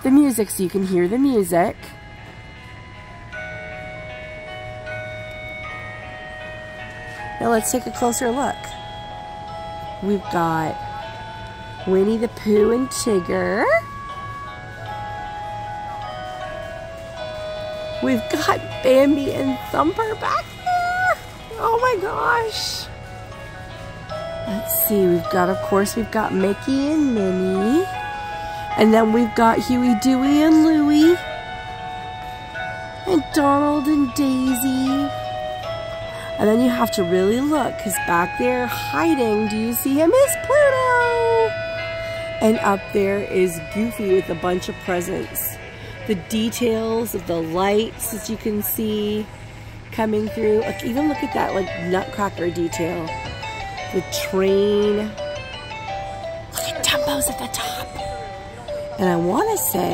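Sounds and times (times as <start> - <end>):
christmas melody from speaker: 0.0 - 59.9.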